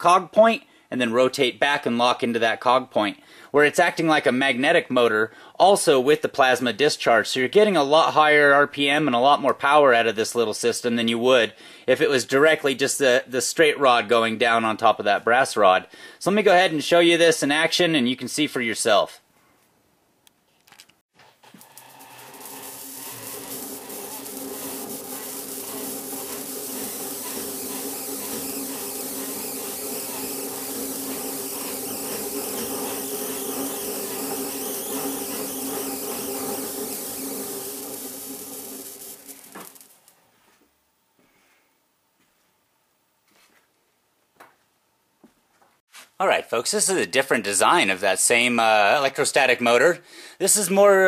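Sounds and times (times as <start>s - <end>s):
hand-cranked machine whirring: 21.4s - 40.0s.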